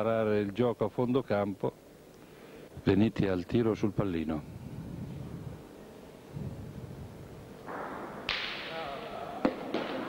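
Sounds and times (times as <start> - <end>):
low rumbling noise: 4.4 - 8.3.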